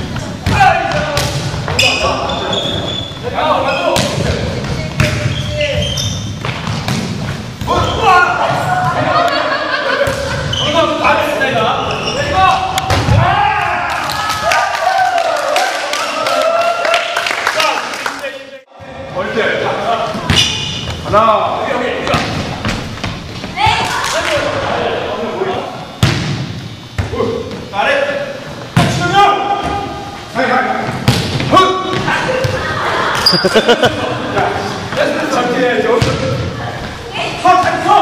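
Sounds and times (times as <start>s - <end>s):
players shouting and laughing: 7.7s - 17.1s, 31.6s - 38.0s.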